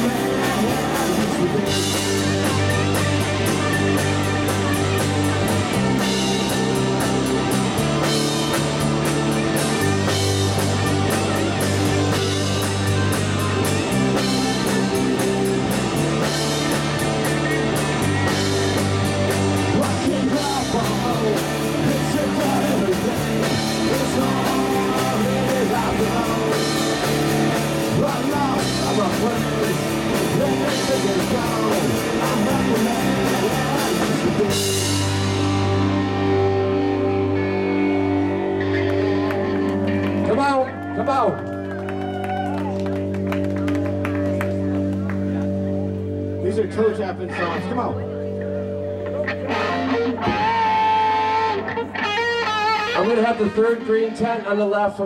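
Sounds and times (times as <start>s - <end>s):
man singing: 0.0s - 2.6s, 19.6s - 35.2s, 52.8s - 55.0s
drum kit: 0.0s - 37.3s
bass guitar: 0.0s - 55.0s
electric guitars: 0.0s - 55.0s.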